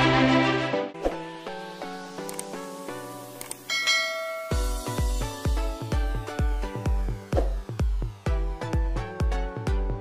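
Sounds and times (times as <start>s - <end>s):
bell-like chime: 3.7s - 5.2s.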